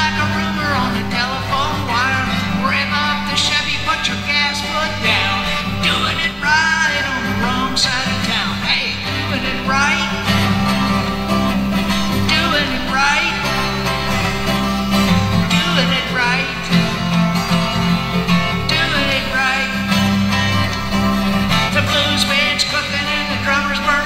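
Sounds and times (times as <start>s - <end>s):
melodic voice singing: 0.0s - 24.0s
twelve-string guitar blues song: 0.0s - 24.0s.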